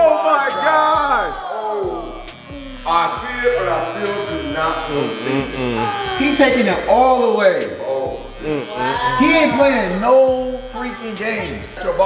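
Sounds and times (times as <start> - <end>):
hair clippers buzzing: 0.1 - 12.0
people talking: 2.8 - 12.0.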